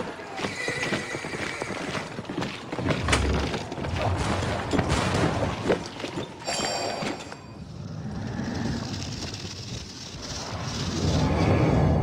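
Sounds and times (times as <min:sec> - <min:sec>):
horse hooves clip-clopping: 0:00.0 - 0:07.2.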